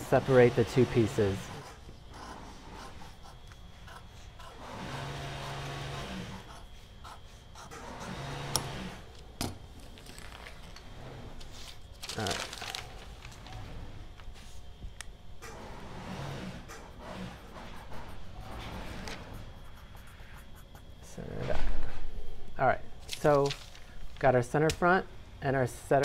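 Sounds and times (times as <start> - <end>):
paper rustling: 9.8 - 10.8, 11.4 - 13.6, 23.0 - 24.3.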